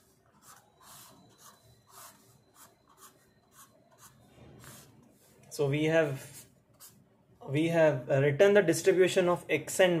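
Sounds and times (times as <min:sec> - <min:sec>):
pen scratching on paper: 0:00.0 - 0:05.4.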